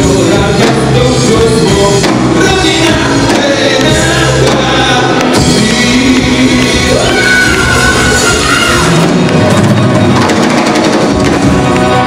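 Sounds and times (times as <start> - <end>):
person singing: 0.0 - 9.6
live rock band playing: 0.0 - 12.0.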